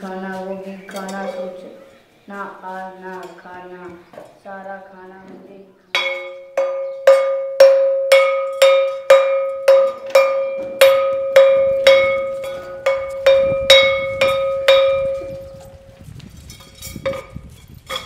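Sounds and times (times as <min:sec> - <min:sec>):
metal plate bell struck with stick: 0:06.0 - 0:15.6.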